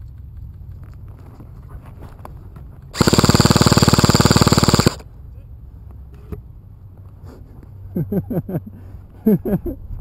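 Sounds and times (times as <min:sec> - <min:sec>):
airsoft gun full-auto burst: 0:03.0 - 0:05.0.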